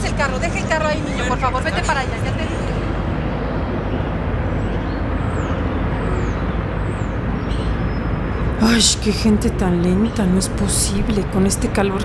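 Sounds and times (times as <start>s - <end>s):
city background noise: 0.0s - 12.0s.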